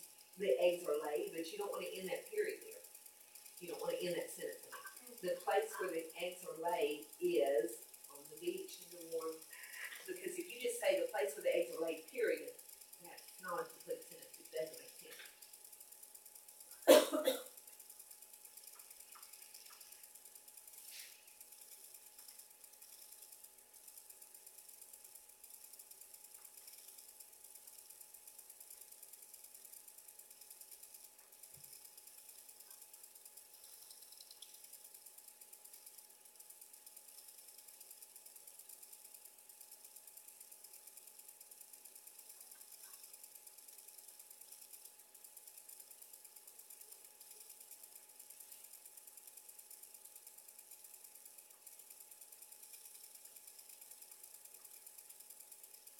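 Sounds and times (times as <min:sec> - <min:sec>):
faint hum and hiss: 0:00.0 - 0:55.9
faint ticks: 0:02.6 - 0:03.7, 0:17.5 - 0:55.9.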